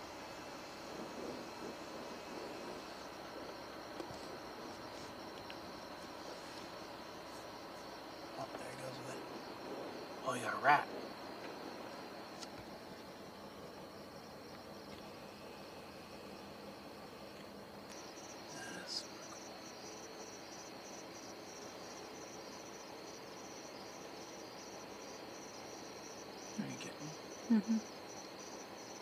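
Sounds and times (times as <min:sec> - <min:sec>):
crickets chirping faintly: 0:00.0 - 0:29.0
insect pulsing: 0:00.0 - 0:29.0.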